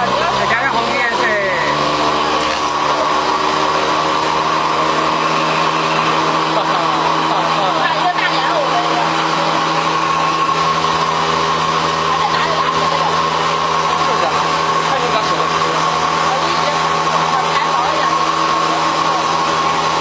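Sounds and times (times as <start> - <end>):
motor-driven machine humming: 0.0 - 20.0.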